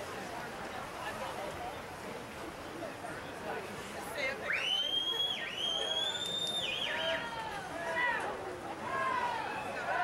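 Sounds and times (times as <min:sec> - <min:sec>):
crowd shouting and chatter: 0:00.0 - 0:10.0
spectators whistling loudly: 0:04.6 - 0:07.2.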